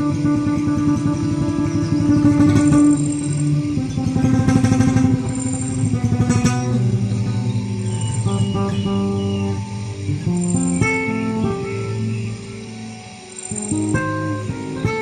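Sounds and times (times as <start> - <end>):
acoustic guitar chords: 0.0 - 15.0
birds chirping: 0.0 - 15.0
river flowing: 0.0 - 15.0.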